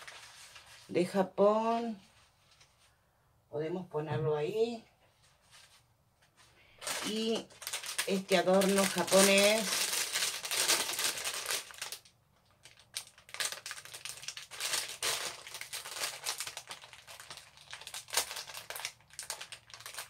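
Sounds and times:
plastic bag crinkling: 0:00.0 - 0:00.9, 0:06.8 - 0:20.0.

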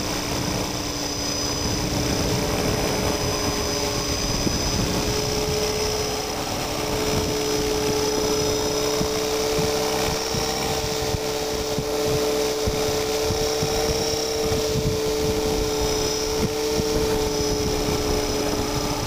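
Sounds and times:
rc helicopter whine: 0:00.0 - 0:19.0.

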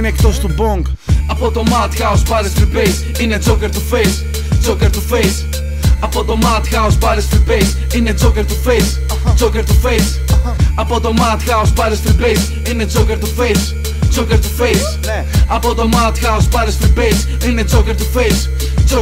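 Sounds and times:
deep bass: 0:00.0 - 0:19.0
rapping over a beat: 0:00.0 - 0:19.0.

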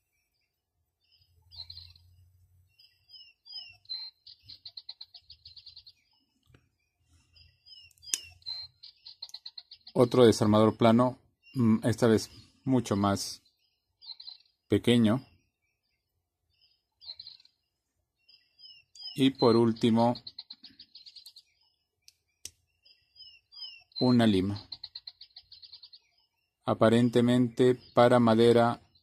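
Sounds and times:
small animal chirping trill: 0:01.1 - 0:06.4, 0:07.3 - 0:10.2, 0:13.4 - 0:14.7, 0:16.6 - 0:26.6.

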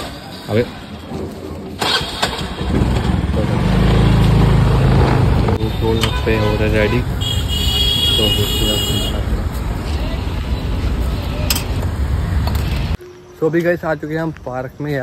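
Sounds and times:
street traffic rumble: 0:00.0 - 0:15.0
people talking: 0:05.6 - 0:07.1, 0:08.1 - 0:11.7, 0:13.4 - 0:15.0.

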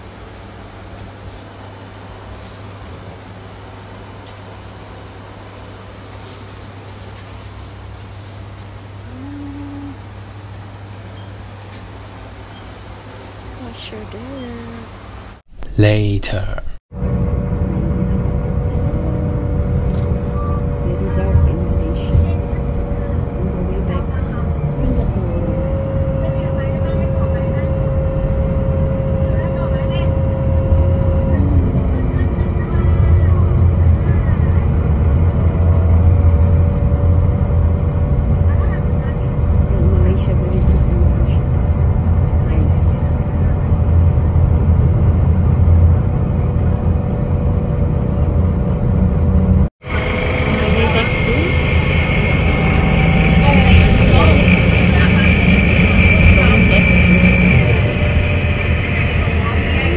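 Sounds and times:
bus road rumble: 0:00.0 - 0:15.3, 0:16.3 - 0:59.9
steady hum: 0:15.5 - 0:16.8, 0:49.8 - 0:59.9.

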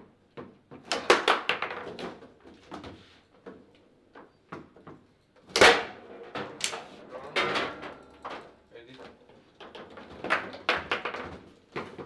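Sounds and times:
table football clacking: 0:09.6 - 0:12.0.

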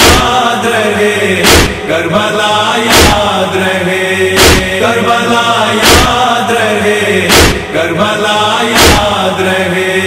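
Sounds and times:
men's chorus chanting in unison: 0:00.0 - 0:10.0
chest-beating strokes: 0:01.4 - 0:01.9, 0:04.4 - 0:04.8, 0:05.8 - 0:06.2, 0:07.3 - 0:07.8, 0:08.8 - 0:09.2.

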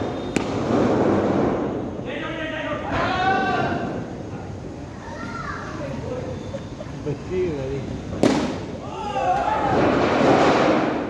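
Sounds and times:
sharp crack of bat on ball: 0:00.3 - 0:00.7, 0:08.2 - 0:08.7.

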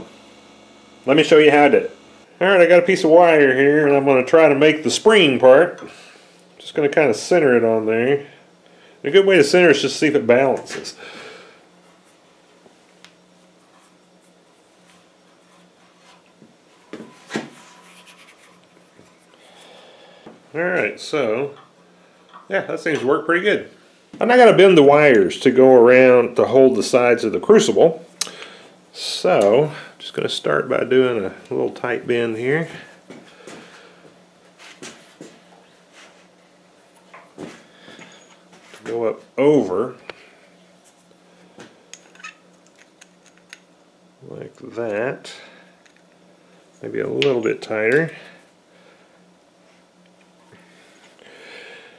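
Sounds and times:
low steady hum: 0:00.0 - 0:51.9.

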